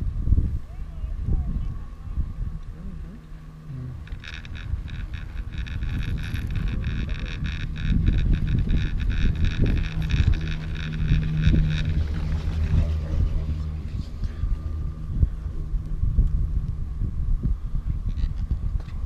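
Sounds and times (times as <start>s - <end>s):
high steady rope whirring: 0.0s - 19.0s
wind rumble on microphone: 0.0s - 19.0s.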